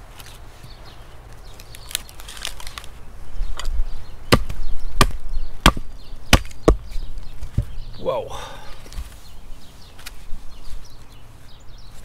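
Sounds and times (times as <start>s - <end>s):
wood cracking: 1.3s - 3.0s.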